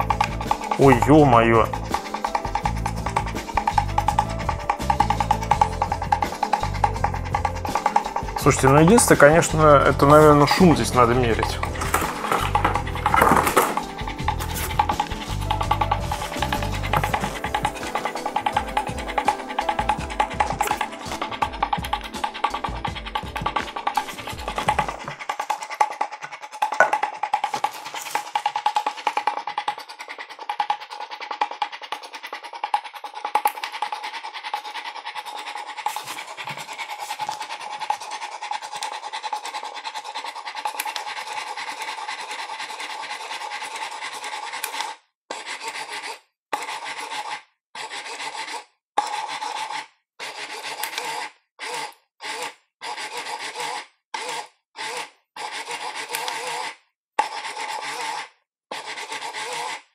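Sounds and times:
motor whining with rapid clicking: 50.3 - 59.8.

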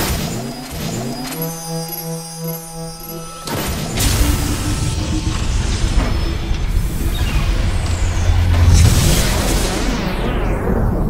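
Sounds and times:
pulsing synthesized drone: 0.0 - 11.0.

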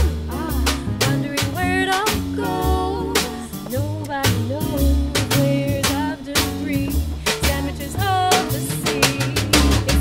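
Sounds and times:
live acoustic band music: 0.0 - 10.0
snare and bass drum hits: 8.3 - 10.0.

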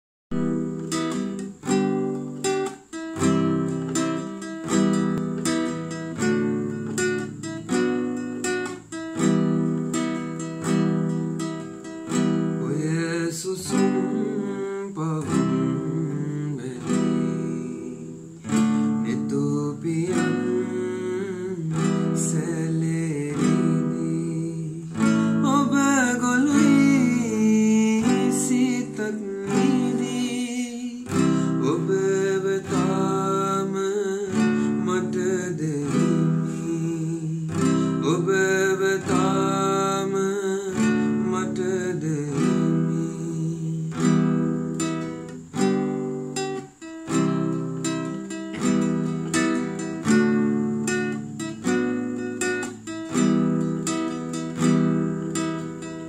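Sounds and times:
classical guitar chords: 0.3 - 56.0
man singing: 12.3 - 44.5.

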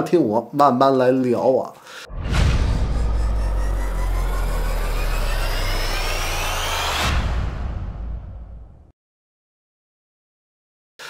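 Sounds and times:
deep bass rumble: 2.1 - 8.9
whoosh rising in pitch: 2.1 - 8.9.

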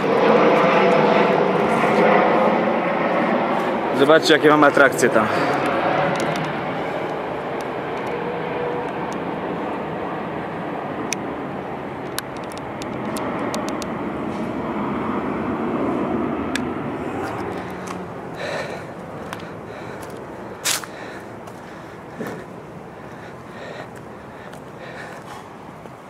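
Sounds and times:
jet airliner passing overhead: 0.0 - 26.0.

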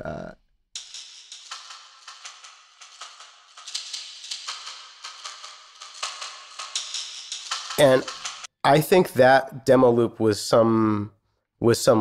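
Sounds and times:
person speaking: 0.0 - 0.4, 7.5 - 12.0
percussion loop clicks and shaker: 0.8 - 8.5.

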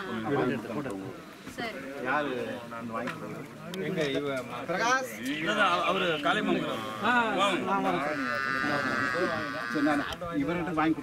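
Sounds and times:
people talking: 0.0 - 11.0
goat bleating: 6.5 - 10.2.

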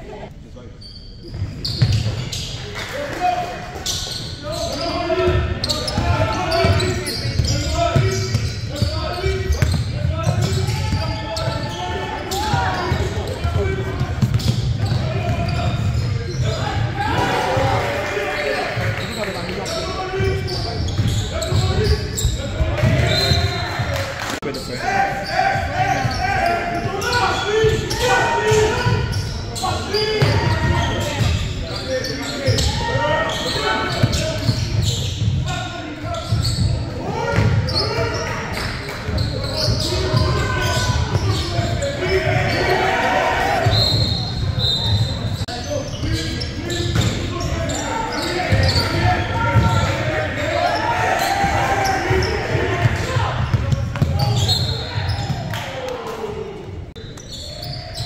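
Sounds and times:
indistinct shouting and chatter: 0.0 - 58.0.

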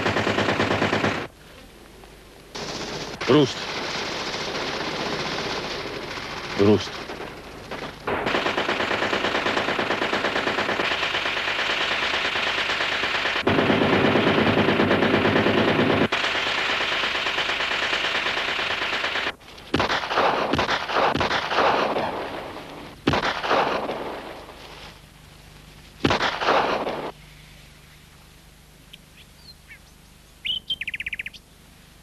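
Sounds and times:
loud gunshots: 0.0 - 1.3, 2.6 - 24.5, 26.0 - 27.2
rapid machine-gun fire: 0.0 - 1.3, 2.5 - 24.6, 26.0 - 27.2.

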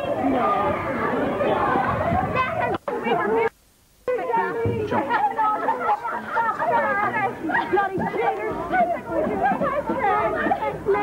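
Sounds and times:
overlapping street chatter: 0.0 - 11.0.

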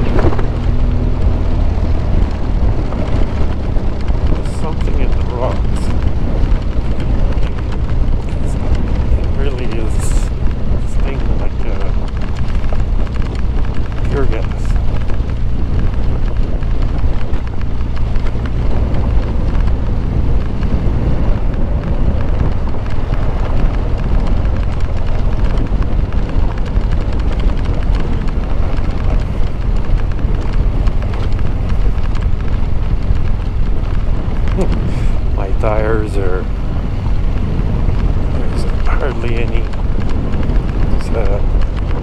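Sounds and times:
motorcycle engine running: 0.0 - 42.0
wind noise on microphone: 0.0 - 42.0.

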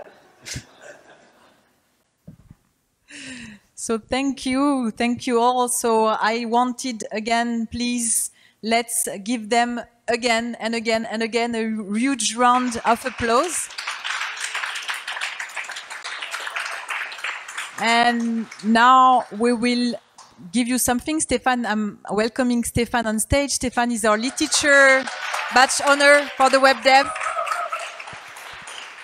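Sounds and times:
audience applauding: 12.4 - 19.6, 24.2 - 29.0.

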